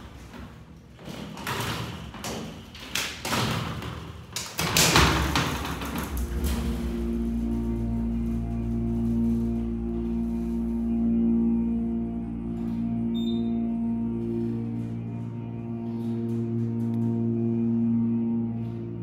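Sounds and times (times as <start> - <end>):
elevator door and gate rattling: 0.0 - 10.5
elevator pump motor hum: 5.1 - 19.0.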